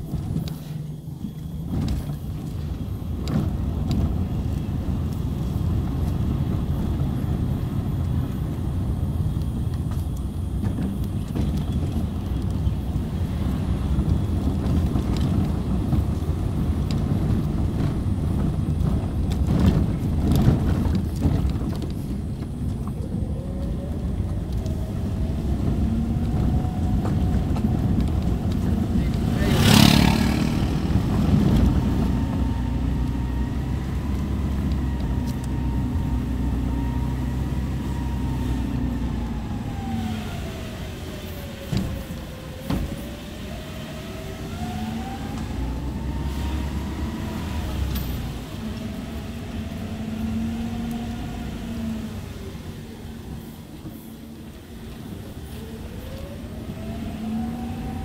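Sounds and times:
car engine and road noise: 0:00.0 - 0:58.0
engine whine: 0:00.0 - 0:58.0
motorcycle passing: 0:25.6 - 0:34.9.

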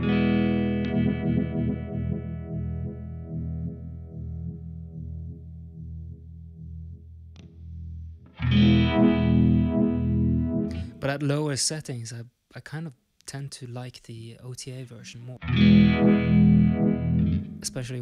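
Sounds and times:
electric guitar chord throbbing: 0:00.0 - 0:05.5, 0:08.1 - 0:11.0, 0:15.4 - 0:18.0.

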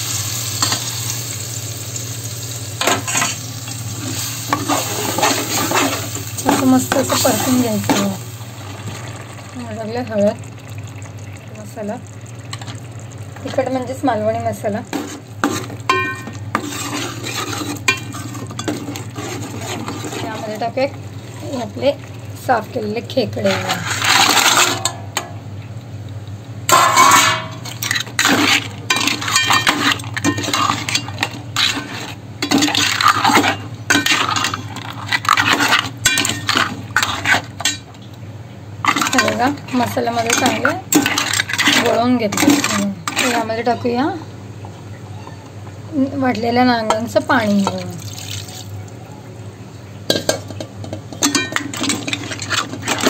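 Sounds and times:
steel ladle clinking on metal pot: 0:15.9 - 0:16.4, 0:51.1 - 0:52.0
crab shells clattering on metal: 0:23.5 - 0:25.3, 0:26.7 - 0:38.0, 0:38.8 - 0:43.5, 0:50.1 - 0:53.0.

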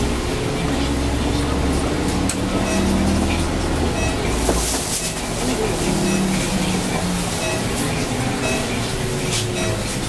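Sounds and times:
bus engine drone: 0:00.0 - 0:10.0
road noise: 0:00.0 - 0:10.0.

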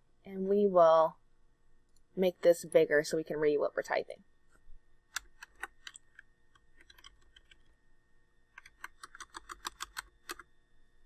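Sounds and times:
computer keyboard keystrokes: 0:06.8 - 0:07.6, 0:08.6 - 0:10.5.

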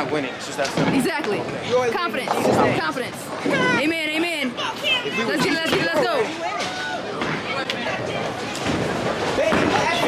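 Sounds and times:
chatter of voices: 0:00.0 - 0:10.0
bowling ball rolling: 0:00.7 - 0:03.8.

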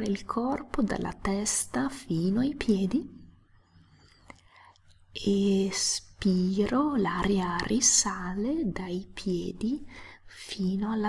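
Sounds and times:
woman's voice: 0:00.0 - 0:03.3, 0:05.1 - 0:11.0.

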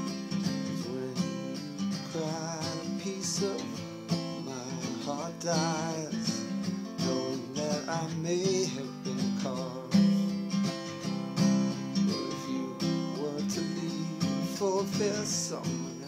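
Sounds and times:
person singing: 0:00.0 - 0:10.4, 0:11.6 - 0:16.0
acoustic guitar strumming: 0:00.0 - 0:16.0.

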